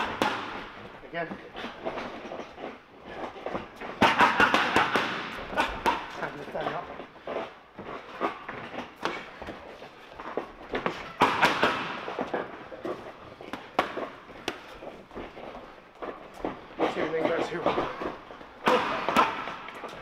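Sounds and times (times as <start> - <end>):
boxing gloves smacking focus pads: 3.2 - 6.8, 10.2 - 16.5.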